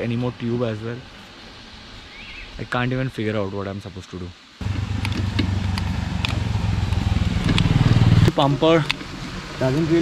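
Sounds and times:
motorcycle engine passing: 0:04.6 - 0:10.0.

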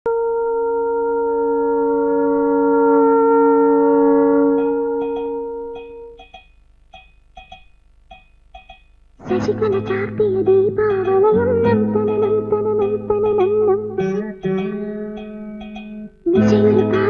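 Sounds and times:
steady drone note: 0:00.1 - 0:06.2
small bells tinkling: 0:04.6 - 0:08.9.

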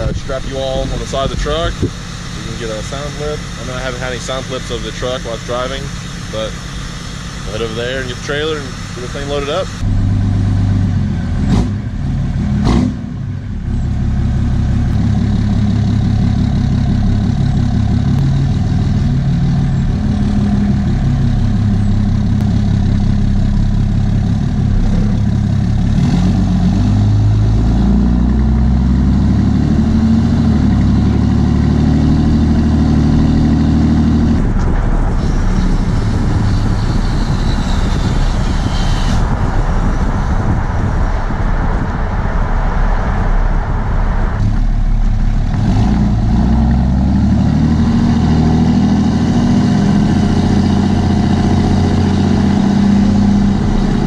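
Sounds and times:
diesel truck exhaust accelerating: 0:00.0 - 0:54.0
wind and road noise: 0:00.0 - 0:54.0.

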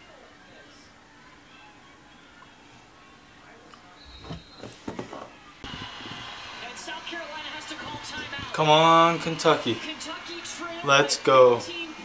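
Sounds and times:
crowd noise through tv speaker: 0:00.0 - 0:12.0
dull thumps: 0:04.1 - 0:06.2.

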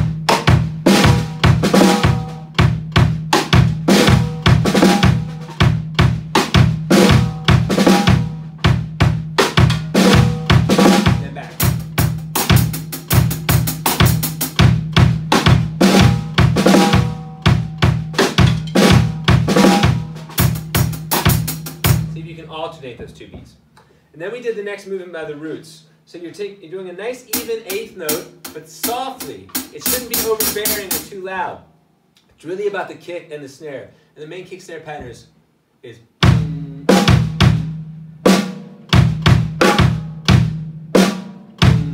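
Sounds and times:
drum kit playing groove: 0:00.0 - 0:23.5, 0:27.3 - 0:31.4, 0:36.2 - 0:41.9.

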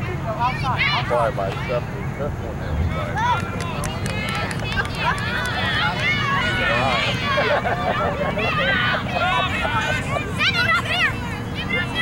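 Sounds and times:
spectators shouting: 0:03.0 - 0:12.0.

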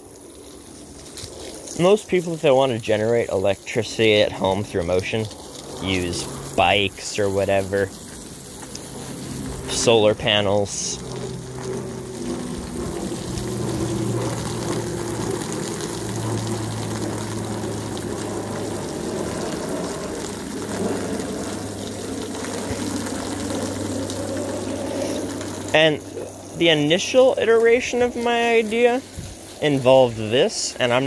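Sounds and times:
hose spraying water on soil: 0:00.0 - 0:31.0
low hum: 0:04.2 - 0:28.0.

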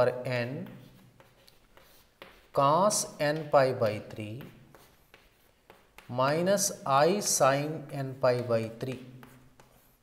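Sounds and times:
person speaking: 0:00.0 - 0:09.8
chalk on a blackboard: 0:00.0 - 0:10.0.

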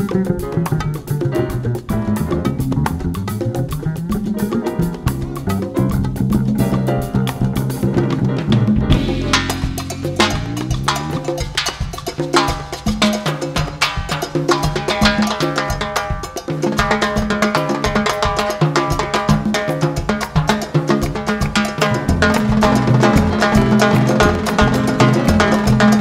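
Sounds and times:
drums and percussion: 0:00.0 - 0:26.0
jazz orchestra playing: 0:00.0 - 0:26.0.

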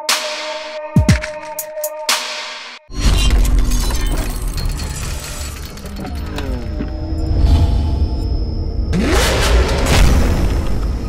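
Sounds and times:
car engine revving effect: 0:08.9 - 0:11.0.

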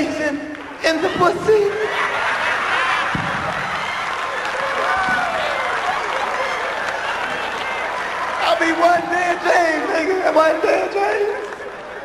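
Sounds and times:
crowd voices calling out: 0:00.6 - 0:12.0
audience applauding: 0:01.5 - 0:12.0.

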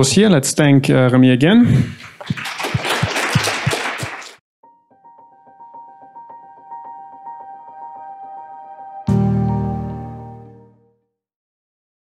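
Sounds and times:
audience applauding: 0:02.0 - 0:04.4
loud separate claps: 0:02.0 - 0:04.4.

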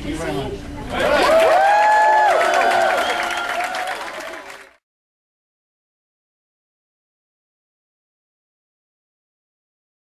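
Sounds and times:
crowd cheering and applauding: 0:01.0 - 0:04.8
people whooping: 0:01.0 - 0:04.8.

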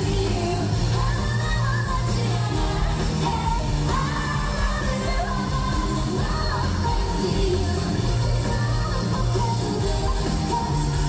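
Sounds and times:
drums: 0:00.0 - 0:11.0
group singing pop song live: 0:00.0 - 0:11.0
guitar: 0:00.0 - 0:11.0
heavy bass: 0:00.0 - 0:11.0.

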